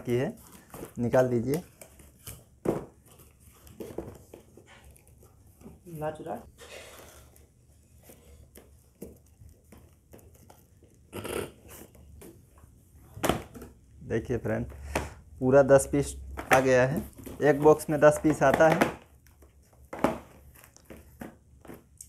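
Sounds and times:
boxes knocking on glass counter: 2.6 - 3.0, 16.2 - 19.1, 19.9 - 21.4.

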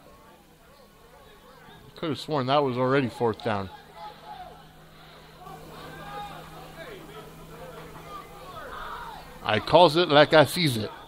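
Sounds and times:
faint background voices: 3.1 - 10.1
low hum: 3.8 - 10.4.

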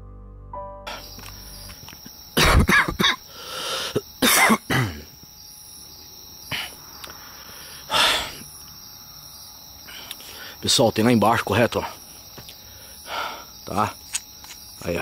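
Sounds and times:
high-pitched background hiss: 0.9 - 15.0
man coughing: 2.4 - 3.3, 3.9 - 5.1.

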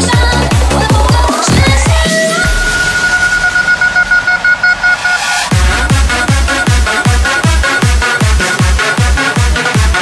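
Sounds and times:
pulsing horn-like synth tone: 2.2 - 9.2.

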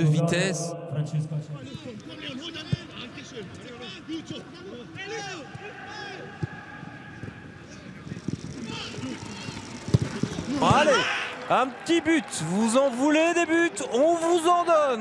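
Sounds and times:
players shouting: 3.7 - 15.0.

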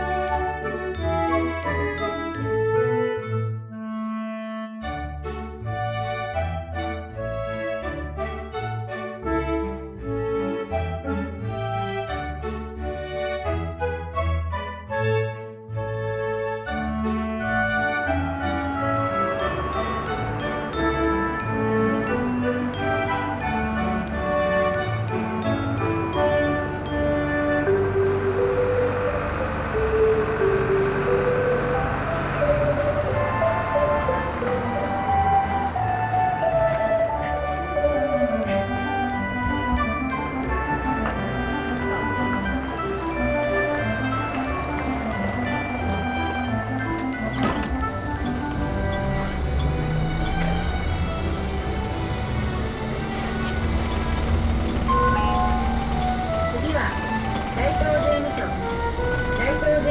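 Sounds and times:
bus engine running: 0.0 - 3.2, 15.8 - 59.9
slow melodic background music: 0.0 - 59.9.

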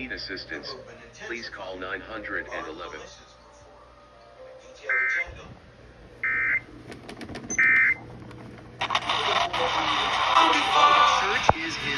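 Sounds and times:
radio programme audio: 8.8 - 11.9.

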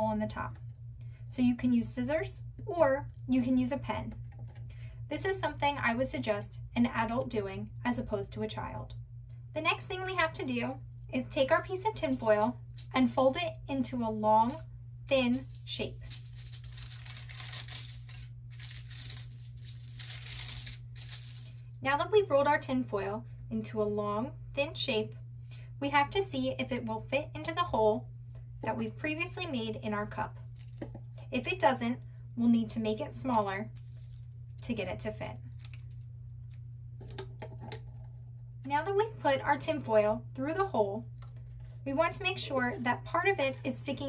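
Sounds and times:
steady low hum: 0.0 - 44.0
tin foil crinkling: 15.3 - 21.8, 30.5 - 30.9, 33.8 - 34.6, 35.3 - 36.6.

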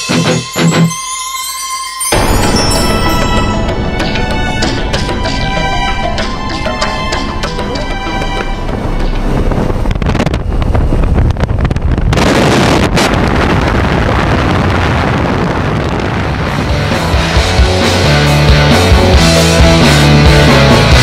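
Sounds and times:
music: 0.0 - 10.3, 16.4 - 21.0
propeller noise: 2.1 - 14.6, 15.5 - 21.0
wind rushing: 2.1 - 19.2
wind buffeting microphone: 2.2 - 17.8.

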